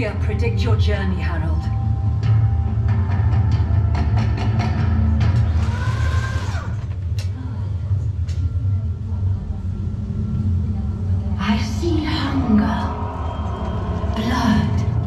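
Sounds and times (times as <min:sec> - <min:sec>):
ambient soundtrack: 0:00.0 - 0:15.0.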